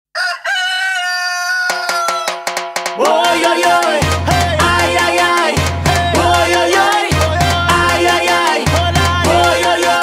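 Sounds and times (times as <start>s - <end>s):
rooster crowing: 0.1s - 2.4s
sharp drum hits: 1.8s - 9.4s.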